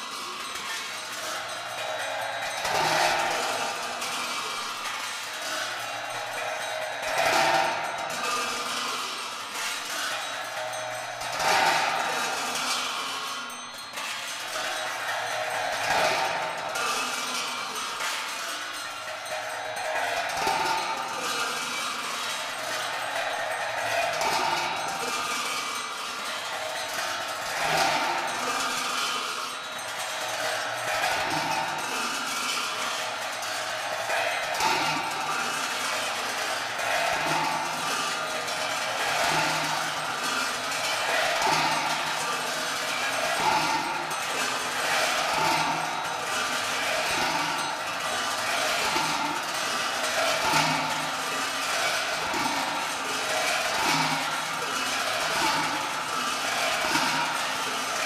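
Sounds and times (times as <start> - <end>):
large cymbals clashing: 0.0 - 58.0.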